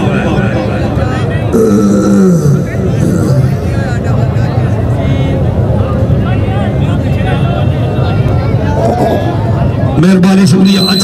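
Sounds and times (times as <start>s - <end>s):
background noise: 0.0s - 11.0s.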